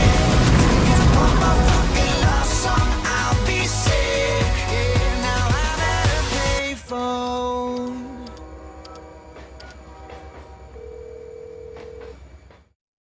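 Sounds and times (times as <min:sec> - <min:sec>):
low rumble: 0:00.0 - 0:04.1
telephone tone: 0:10.8 - 0:12.2.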